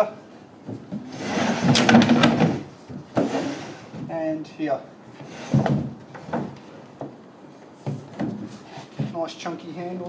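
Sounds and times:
plastic box scraping on wood: 1.0s - 3.9s.

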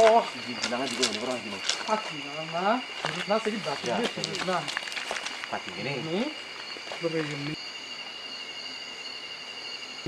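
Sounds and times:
night insects chirring: 0.0s - 10.0s.

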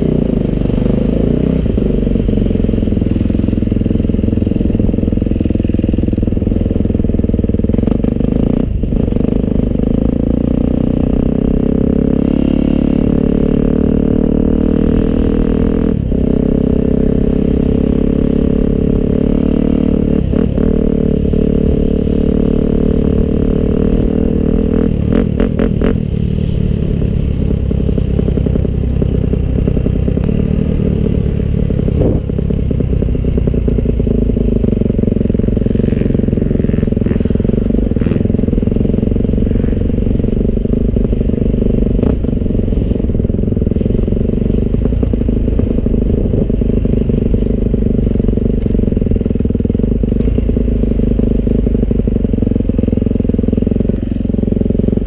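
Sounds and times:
motocross bike engine running: 16.0s - 55.0s.

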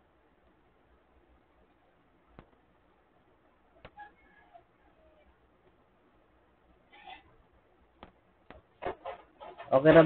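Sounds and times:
man speaking: 9.7s - 10.0s.

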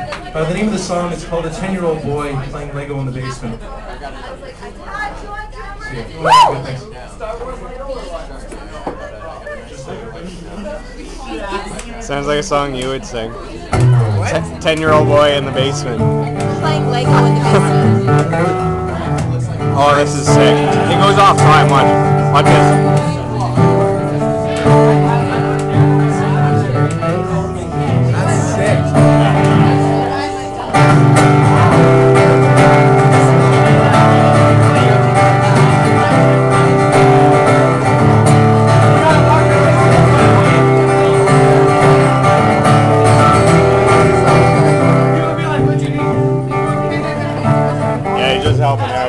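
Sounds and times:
acoustic guitar strumming chords: 13.7s - 49.0s.

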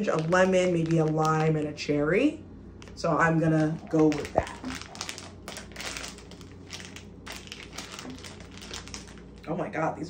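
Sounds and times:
plastic candy bag crinkling: 0.0s - 2.2s, 2.8s - 9.7s.

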